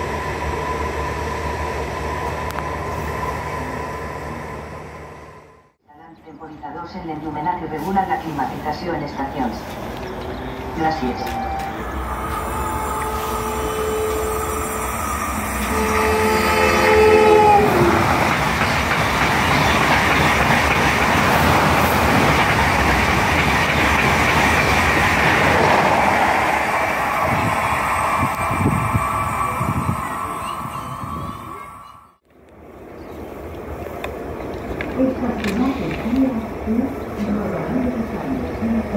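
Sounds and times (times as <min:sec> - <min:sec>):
train wheels rushing on rails: 0:09.6 - 0:32.0
train horn blasts: 0:11.4 - 0:18.0.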